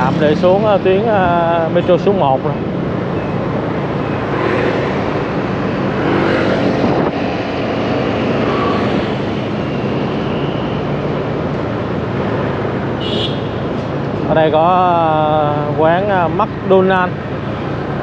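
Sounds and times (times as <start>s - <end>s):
passing vehicles: 0.0s - 18.0s
rushing air: 2.8s - 14.1s.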